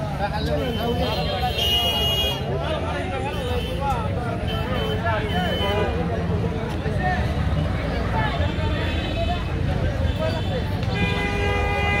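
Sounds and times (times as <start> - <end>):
low traffic rumble: 0.0 - 12.0
street crowd chatter: 0.0 - 12.0
vehicle horn blast: 10.9 - 12.0.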